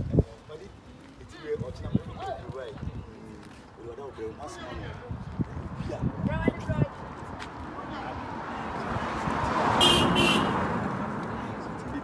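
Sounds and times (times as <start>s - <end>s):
vehicle passing: 6.8s - 12.0s
short horn toots: 9.8s - 10.6s.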